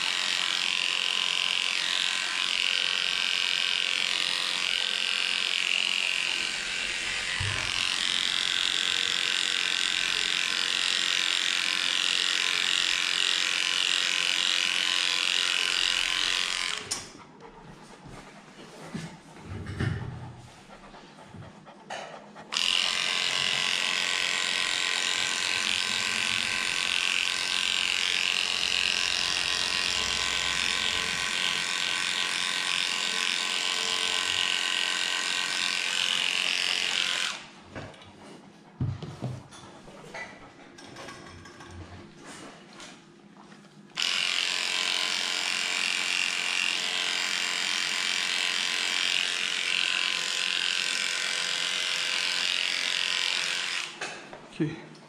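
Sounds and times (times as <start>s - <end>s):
electric dog clipper humming: 0.0s - 17.2s, 22.5s - 37.6s, 43.9s - 54.3s.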